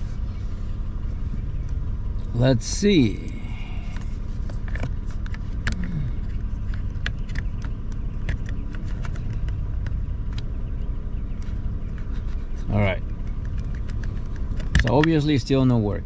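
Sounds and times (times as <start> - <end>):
car engine idling hum: 0.0 - 16.0.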